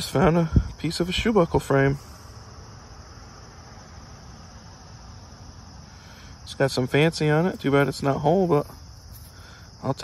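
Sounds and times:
insect chorus: 0.0 - 10.0.

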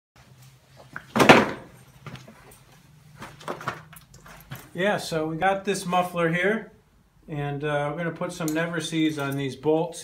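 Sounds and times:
handling noises: 0.4 - 5.0.

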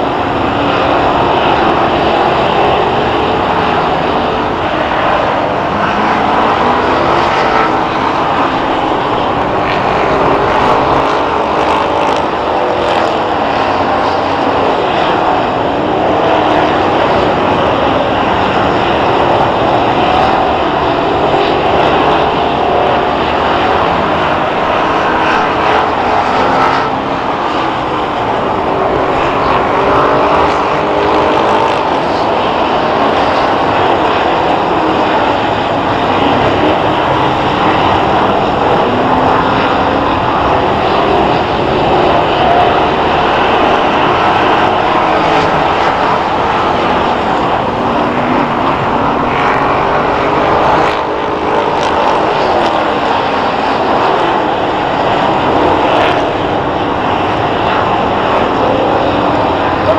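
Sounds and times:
stock car engines racing: 0.0 - 59.9.

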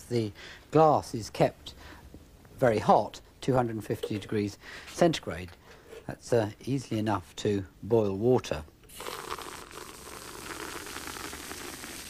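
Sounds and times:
water sizzling on hot glass: 8.9 - 12.0.

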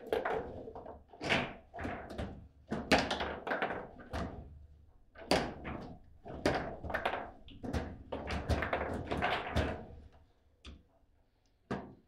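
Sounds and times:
foosball knocks and clacks: 0.0 - 4.5, 5.2 - 10.0.

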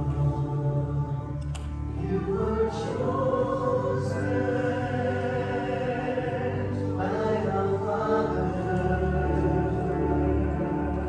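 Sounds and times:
church choir singing a hymn: 0.0 - 11.0.

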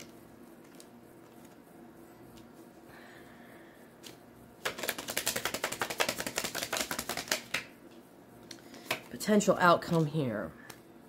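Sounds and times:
cards being shuffled: 0.0 - 1.6, 4.0 - 7.7, 8.5 - 9.1, 9.8 - 10.8.

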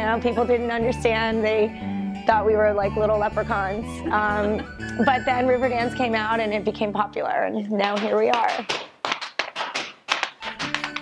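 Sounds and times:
music with low sustained notes: 0.0 - 7.5
hard shoes tapping on floor: 7.7 - 11.0.

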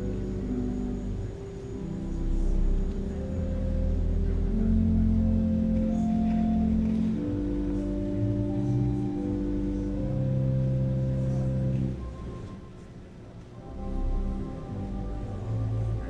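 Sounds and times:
church organ chords: 0.0 - 12.9, 13.6 - 16.0.

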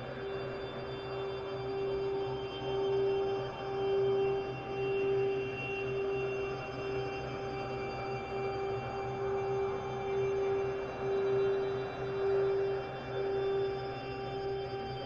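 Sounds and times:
pulsing sine tone: 0.0 - 15.0.

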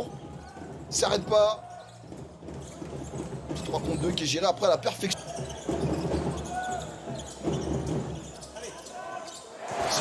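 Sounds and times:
crowd noise and voices: 0.0 - 10.0.

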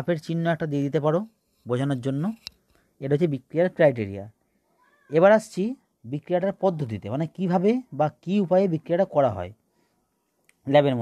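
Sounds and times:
cat meowing: 4.8 - 5.2.

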